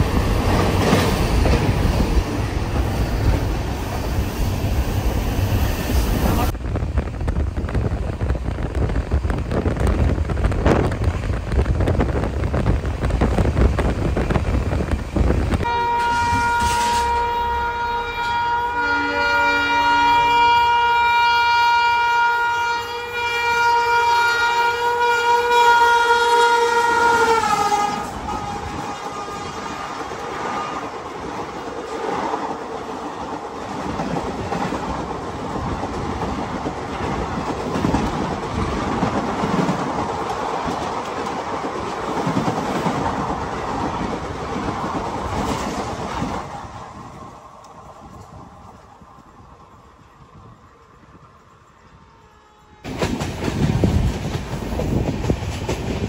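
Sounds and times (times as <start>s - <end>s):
passenger train passing: 0.0s - 56.0s
train horn: 15.6s - 30.9s, 51.9s - 53.0s.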